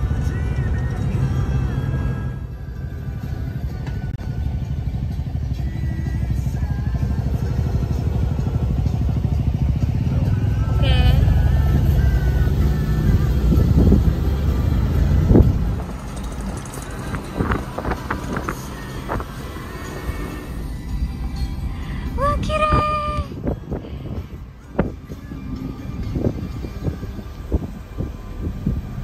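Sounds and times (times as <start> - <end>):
car road and wind noise: 0.0 - 29.0.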